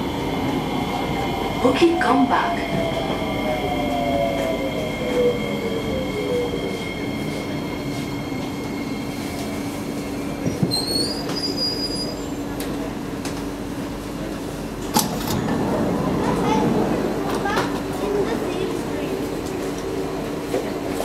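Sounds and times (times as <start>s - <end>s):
train car rumble: 0.0s - 21.0s
train brake squeal: 10.6s - 12.4s.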